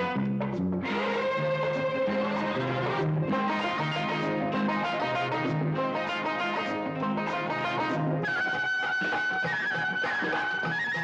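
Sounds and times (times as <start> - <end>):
instrumental ensemble with bass line: 0.0 - 11.0.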